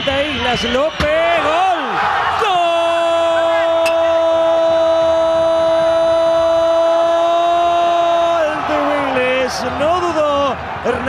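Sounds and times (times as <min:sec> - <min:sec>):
commentator shouting: 0:00.2 - 0:11.0.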